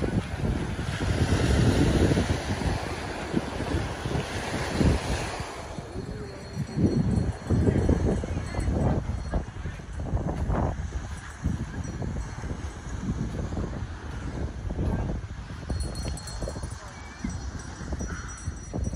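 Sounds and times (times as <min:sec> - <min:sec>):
wind buffeting microphone: 0:00.0 - 0:18.9.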